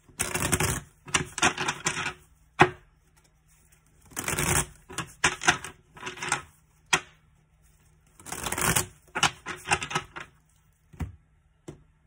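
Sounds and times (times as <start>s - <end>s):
cards shuffling: 0.0s - 7.0s, 7.6s - 10.9s.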